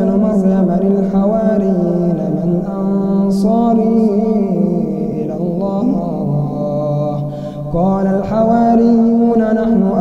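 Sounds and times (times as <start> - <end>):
man reciting in melodic chant: 0.0 - 10.0.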